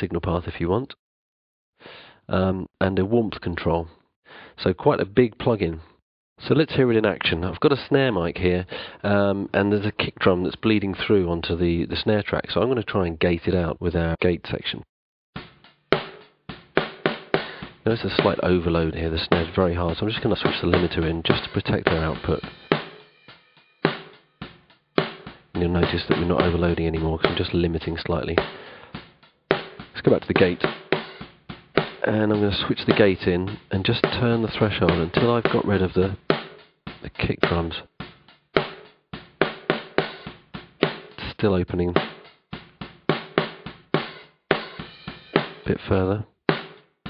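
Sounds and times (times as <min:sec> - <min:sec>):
gated snare drum hits: 0:15.4 - 0:18.5, 0:19.3 - 0:27.6, 0:28.4 - 0:41.2, 0:42.0 - 0:45.7, 0:46.5 - 0:46.8
snare drum hits: 0:43.1 - 0:45.7.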